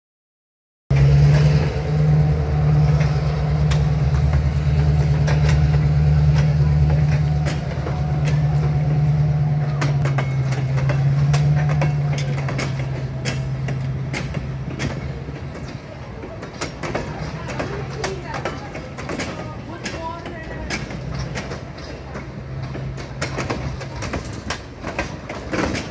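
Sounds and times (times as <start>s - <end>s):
diesel locomotive engine drone: 0.9s - 25.9s
wheels clicking over rail joints: 0.9s - 25.9s.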